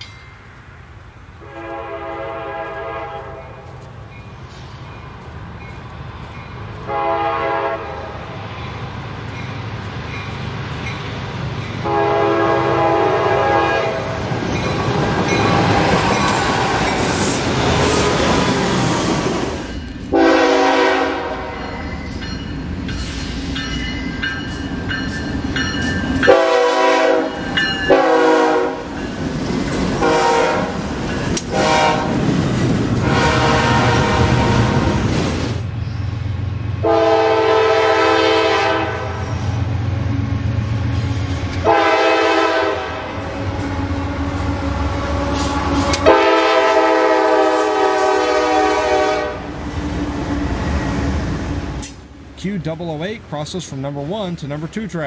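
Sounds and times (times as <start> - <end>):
train rumbling on rails: 0.0 - 55.0
locomotive air horn blasts: 1.4 - 3.8, 6.8 - 8.2, 11.8 - 14.2, 20.1 - 21.6, 26.2 - 28.9, 30.0 - 30.8, 31.5 - 32.2, 33.0 - 35.0, 36.8 - 39.3, 41.6 - 49.5.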